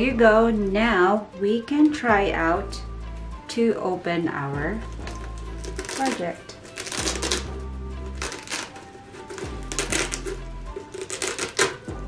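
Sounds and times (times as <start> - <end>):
background music: 0.0 - 12.0
velcro strips ripping apart: 4.9 - 12.0.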